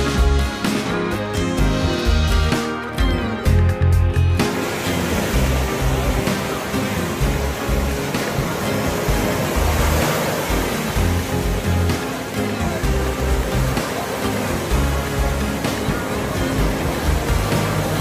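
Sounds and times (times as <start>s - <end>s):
background music with low notes: 0.0s - 18.0s
ocean surf breaking: 4.3s - 18.0s.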